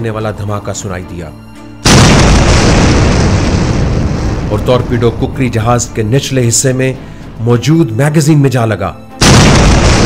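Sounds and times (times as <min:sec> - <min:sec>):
explosion blast: 0:01.8 - 0:05.9, 0:09.2 - 0:10.0
heavy rumble: 0:01.9 - 0:06.1.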